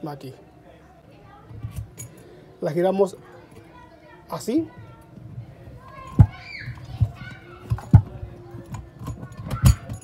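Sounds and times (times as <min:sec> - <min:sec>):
faint children's voices: 0:00.0 - 0:10.0
metal clicks and knocks: 0:06.0 - 0:10.0.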